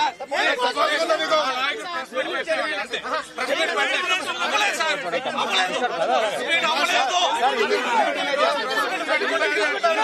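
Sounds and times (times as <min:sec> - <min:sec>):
crowd of men talking loudly: 0:00.0 - 0:10.0.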